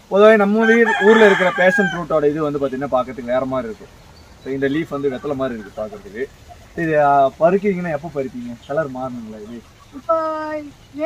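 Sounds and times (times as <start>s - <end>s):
rooster crowing: 0.5s - 2.4s, 4.7s - 6.8s.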